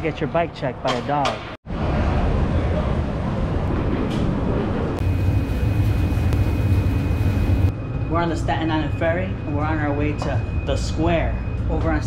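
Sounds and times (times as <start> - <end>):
thin high whine: 5.0 - 9.4.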